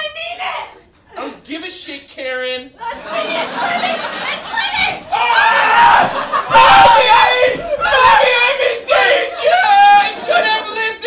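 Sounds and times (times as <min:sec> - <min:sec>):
overlapping voices and chatter: 0:02.8 - 0:11.0.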